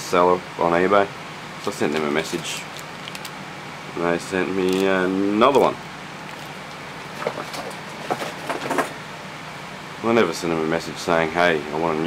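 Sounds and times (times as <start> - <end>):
plastic packaging crinkling: 1.6 - 3.4, 4.6 - 8.4.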